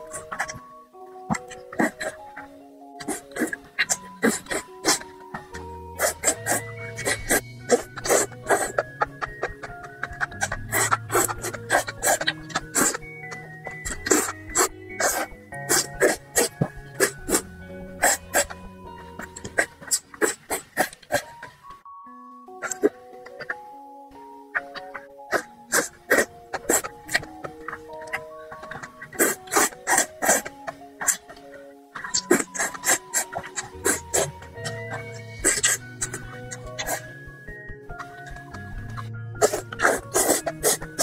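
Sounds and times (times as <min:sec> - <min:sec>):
faint background music: 0:00.0 - 0:41.0
person slurping noodles: 0:03.0 - 0:05.2, 0:05.9 - 0:18.6, 0:25.3 - 0:31.3, 0:32.0 - 0:37.1, 0:39.4 - 0:41.0.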